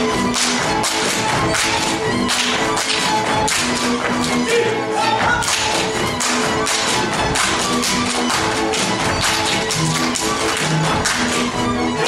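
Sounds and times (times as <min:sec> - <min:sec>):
dancers' feet tapping: 0:00.0 - 0:04.5, 0:05.2 - 0:12.0
folk dance music with strings: 0:00.0 - 0:12.0.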